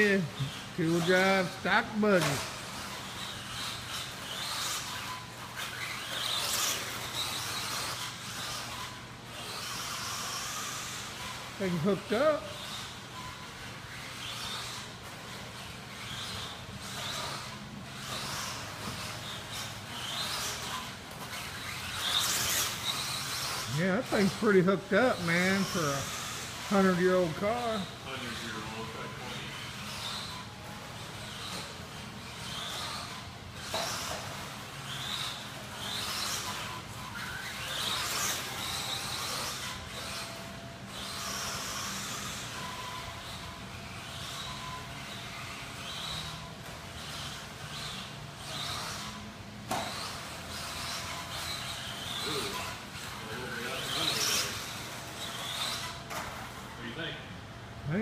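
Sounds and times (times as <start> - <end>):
electric rc car motor whine: 0.0 - 58.0.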